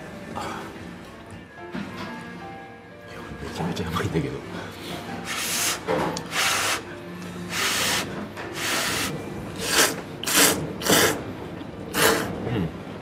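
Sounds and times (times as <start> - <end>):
person slurping noodles: 7.5 - 11.2, 11.9 - 12.4.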